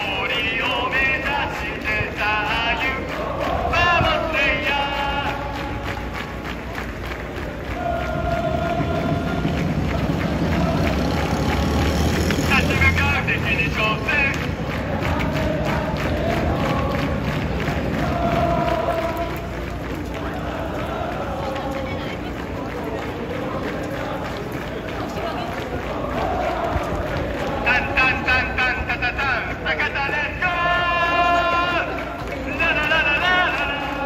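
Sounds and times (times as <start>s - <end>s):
crowd chanting: 0.0s - 34.0s.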